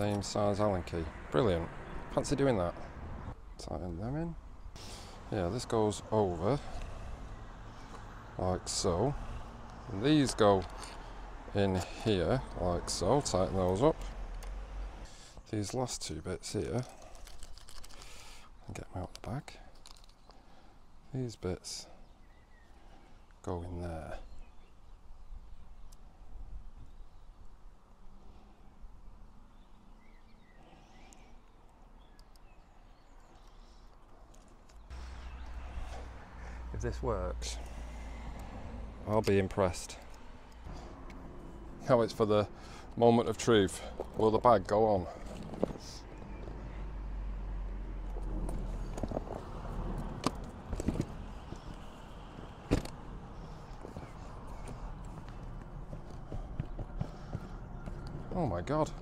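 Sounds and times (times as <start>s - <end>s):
bike parts clicking: 16.9s - 18.2s, 19.2s - 20.4s
bird-like chirps: 34.7s - 36.6s.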